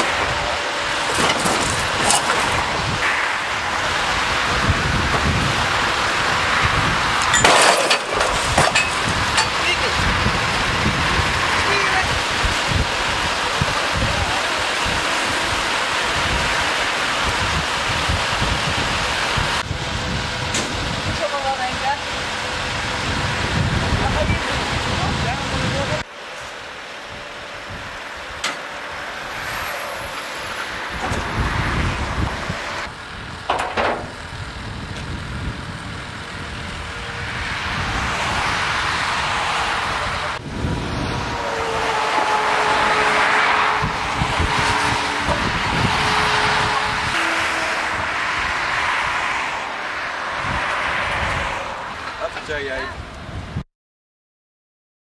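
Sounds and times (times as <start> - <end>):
steady mechanical whine: 0.0 - 50.5
cars passing: 0.0 - 53.4.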